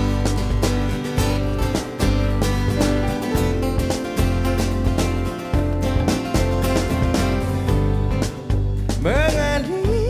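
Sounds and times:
drums: 0.0 - 10.0
electric bass: 0.0 - 10.0
keyboard: 0.0 - 10.0
strummed acoustic guitars: 0.0 - 10.0.

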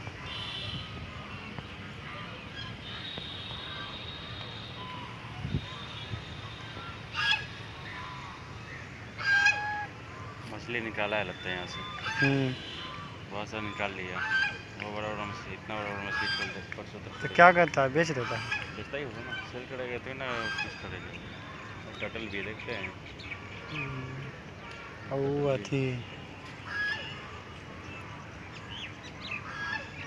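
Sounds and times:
small birds chirping: 0.1 - 30.0
goose honking: 5.7 - 21.7, 26.6 - 27.4, 29.4 - 30.0.

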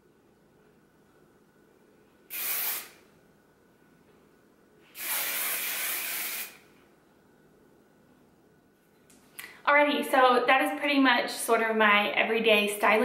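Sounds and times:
hairspray hissing: 2.3 - 3.0, 4.9 - 6.6.

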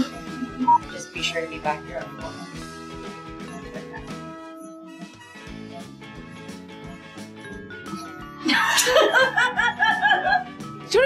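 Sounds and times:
light background music: 0.0 - 11.0
high-pitched laughter: 8.5 - 10.4.

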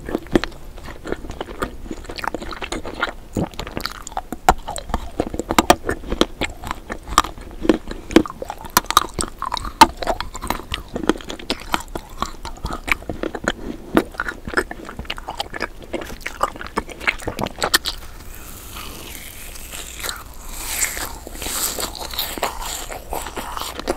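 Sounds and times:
person chewing with sharp clicks: 0.0 - 23.9.

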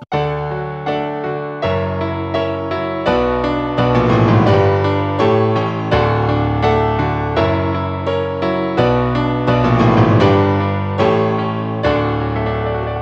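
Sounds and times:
piano chords with walking bass: 0.0 - 13.0.

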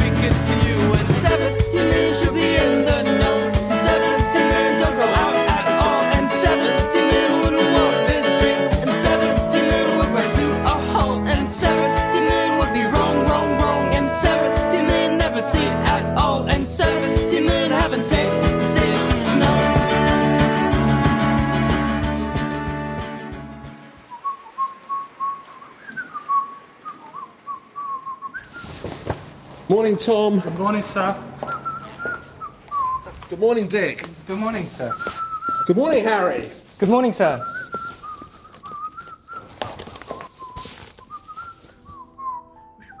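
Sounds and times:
song: 0.0 - 24.2
held chord: 0.6 - 23.9
person whistling melody: 1.5 - 15.8, 24.1 - 28.8, 31.4 - 33.2, 34.9 - 35.8, 37.4 - 43.0
person whistling: 24.1 - 29.0, 31.4 - 33.2, 34.9 - 36.0, 37.3 - 43.0.

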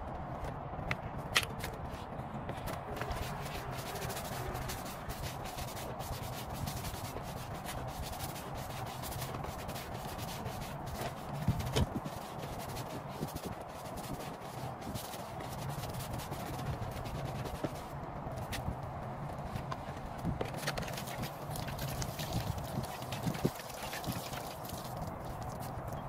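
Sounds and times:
scrubbing rubber floor mat: 2.9 - 17.9, 20.5 - 25.6.

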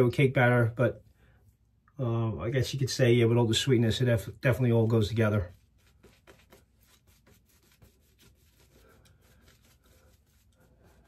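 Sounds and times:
shaving brush rubbing on cheek: 4.6 - 11.0.

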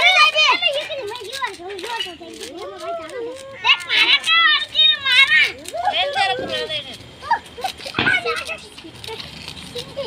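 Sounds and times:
children calling and shouting: 0.0 - 10.0.

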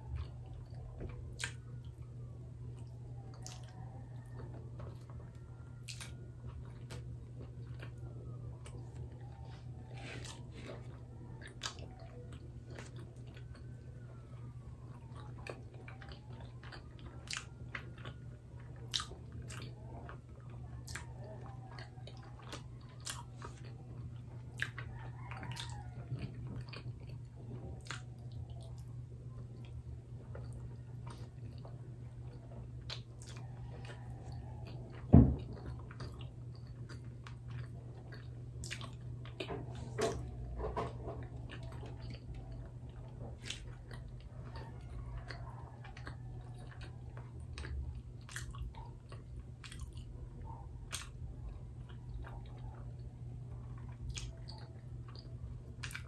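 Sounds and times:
low steady hum: 0.0 - 56.0
person chewing food: 0.0 - 56.0.

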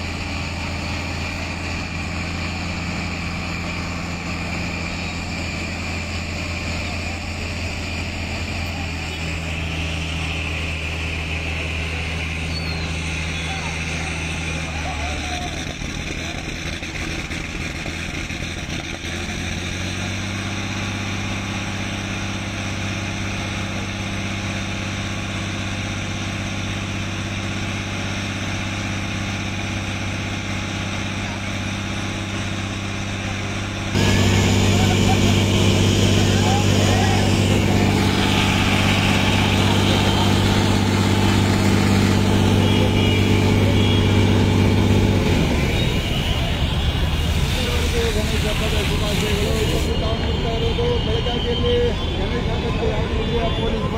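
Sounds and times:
water cannon truck engine humming: 0.0 - 53.9
water jet spraying: 34.0 - 50.0.

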